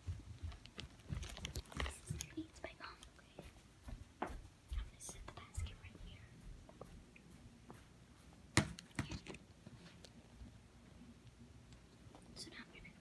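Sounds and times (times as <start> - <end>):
girl whispering: 1.9 - 3.5, 4.8 - 6.4, 12.3 - 13.0.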